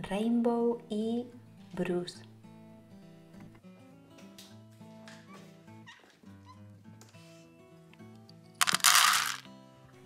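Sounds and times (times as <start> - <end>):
soft background music: 0.0 - 8.6
dry cat food poured into dish: 8.6 - 9.4.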